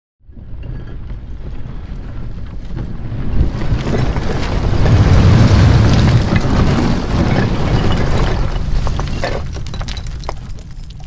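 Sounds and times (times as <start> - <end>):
low rumbling noise: 0.2 - 10.6.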